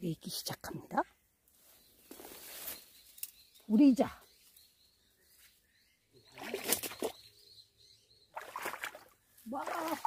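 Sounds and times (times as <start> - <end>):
faint birdsong: 0.0 - 10.0
leafy branches rustling: 1.4 - 4.6.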